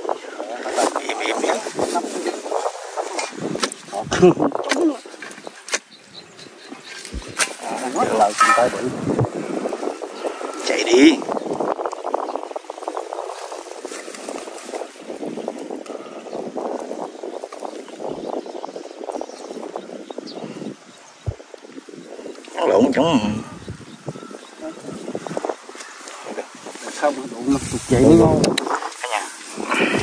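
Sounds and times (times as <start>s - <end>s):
digging scraping dry earth: 0.9s - 9.7s.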